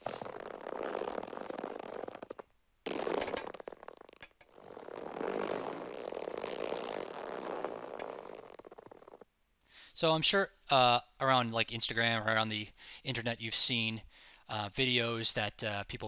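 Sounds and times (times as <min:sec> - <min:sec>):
dense crackly noise: 0:00.0 - 0:09.2.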